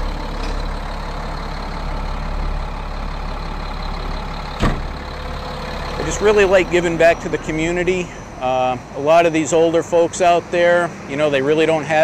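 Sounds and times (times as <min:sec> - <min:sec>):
diesel engine idling: 0:00.0 - 0:12.0
sharp knock: 0:04.6 - 0:04.9.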